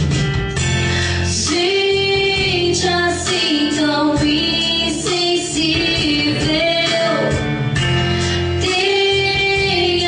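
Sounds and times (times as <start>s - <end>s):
instrumental accompaniment: 0.0s - 10.0s
women singing: 1.3s - 7.4s, 8.5s - 10.0s.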